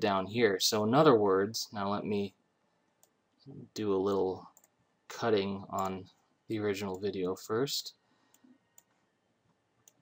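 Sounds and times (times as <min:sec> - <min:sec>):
computer mouse clicks: 0:09.8 - 0:10.0.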